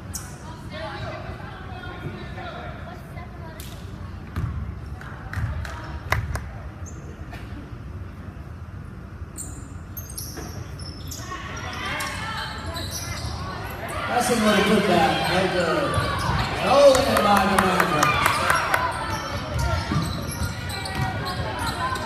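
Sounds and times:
murmur of spectators: 0:00.0 - 0:22.0.

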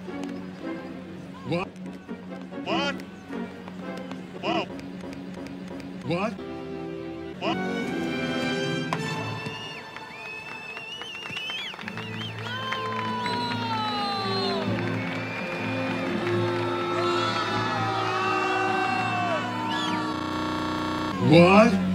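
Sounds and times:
background music with held chords: 0:00.0 - 0:09.4
crowd cheering and whooping: 0:09.3 - 0:21.4.

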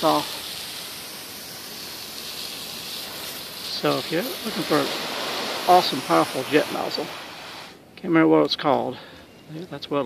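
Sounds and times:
hose nozzle spraying water jet: 0:00.0 - 0:07.8.

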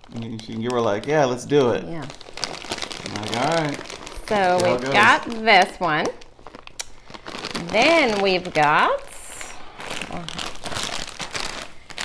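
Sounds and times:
plastic snack bag crinkling: 0:00.0 - 0:12.0.

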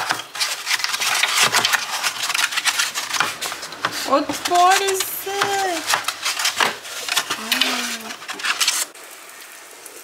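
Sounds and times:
plastic bag crinkling: 0:00.1 - 0:09.0.

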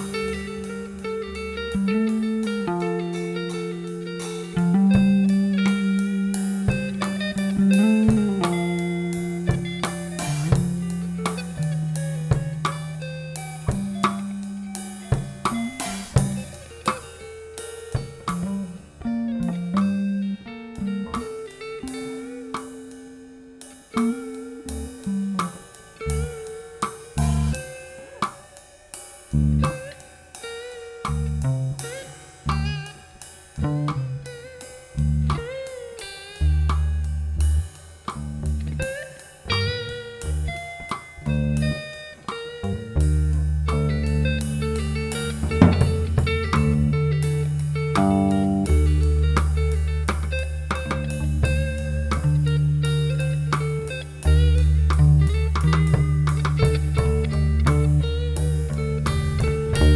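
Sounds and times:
bass notes: 0:00.0 - 0:22.8, 0:24.0 - 0:26.4, 0:27.1 - 0:27.7, 0:29.3 - 0:29.9, 0:31.1 - 0:32.9, 0:33.6 - 0:34.3, 0:34.9 - 0:35.6, 0:36.4 - 0:41.9, 0:42.6 - 0:59.9
drum kit: 0:00.0 - 0:59.9
guitar lines: 0:00.0 - 0:59.9.

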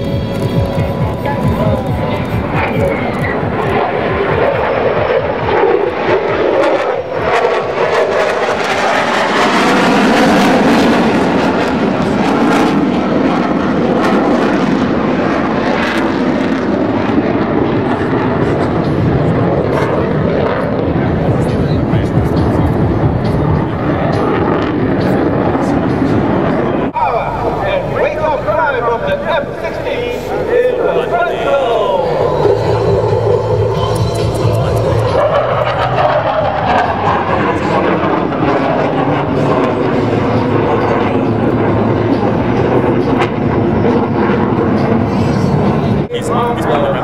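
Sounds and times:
fighter jet roar: 0:00.0 - 0:47.0.

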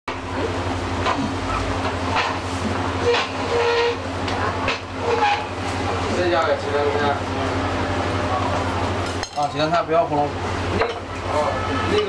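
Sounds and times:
background chatter: 0:00.1 - 0:12.0
steady low hum: 0:00.1 - 0:12.0.

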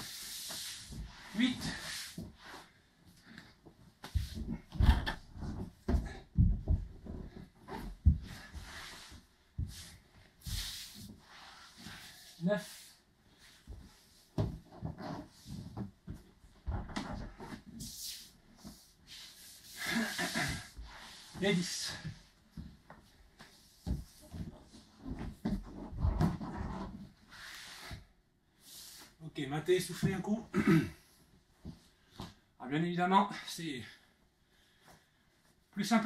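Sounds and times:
body thudding on wooden floor: 0:04.1 - 0:08.6.

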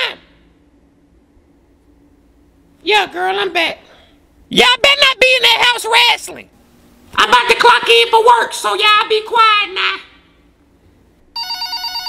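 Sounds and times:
electronic telephone ringing: 0:11.3 - 0:12.0.

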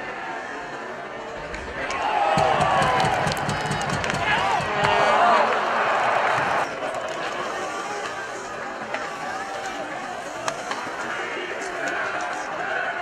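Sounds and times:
crowd murmuring and chattering: 0:00.0 - 0:13.0
sharp clacks of sticks and puck: 0:01.5 - 0:12.6.

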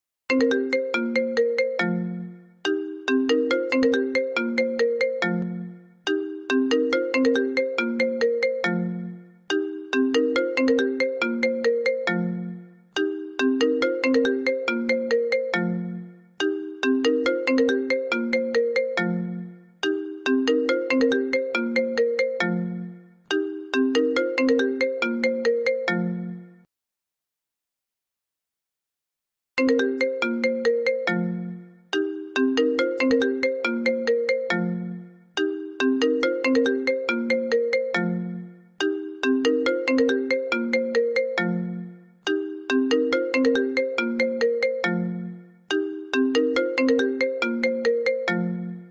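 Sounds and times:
phone ringtone melody: 0:00.3 - 0:26.7, 0:29.6 - 0:48.9.

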